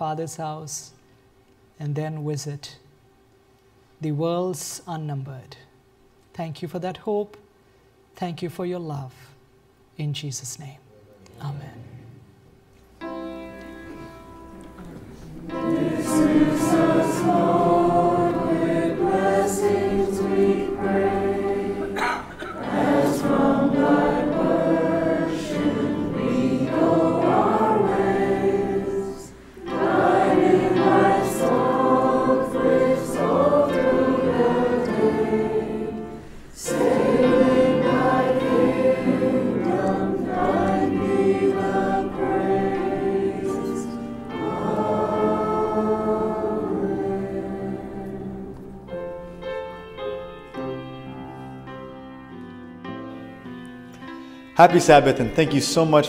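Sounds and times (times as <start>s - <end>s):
choir singing: 13.0s - 53.4s, 54.6s - 56.0s.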